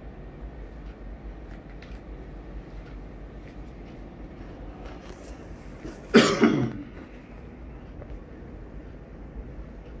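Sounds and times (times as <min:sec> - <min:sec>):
low background hum: 0:00.0 - 0:10.0
person coughing: 0:05.8 - 0:07.0.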